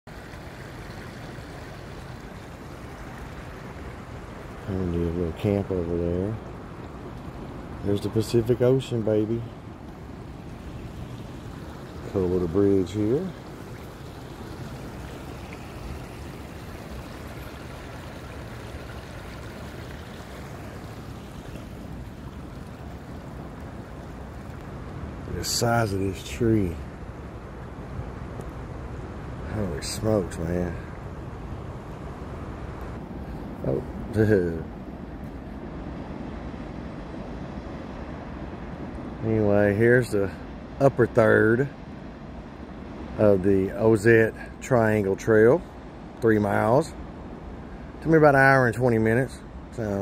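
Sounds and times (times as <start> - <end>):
creek running over rocks: 0.1 - 37.0, 43.2 - 45.6, 46.2 - 46.9, 47.6 - 50.0.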